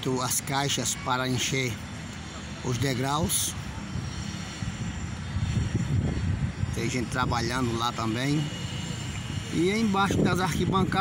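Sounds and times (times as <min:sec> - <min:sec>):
wind buffeting microphone: 0:02.6 - 0:11.0.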